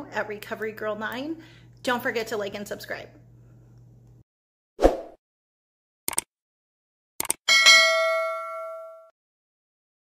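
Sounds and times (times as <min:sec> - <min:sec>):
notification bell ding: 0:07.5 - 0:09.1.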